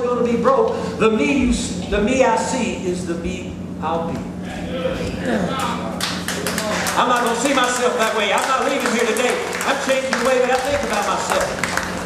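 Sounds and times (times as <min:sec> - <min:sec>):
voices in a large room: 0:00.0 - 0:12.0
audience clapping: 0:05.6 - 0:12.0.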